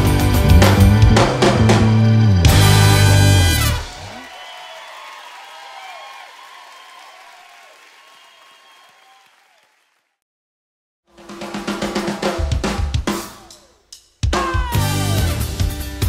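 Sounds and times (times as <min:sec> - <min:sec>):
band final chord and cymbals: 0:00.0 - 0:03.8
fast drum kit playing: 0:00.0 - 0:04.1, 0:11.1 - 0:16.0
crowd cheering: 0:01.3 - 0:10.2, 0:11.4 - 0:13.7.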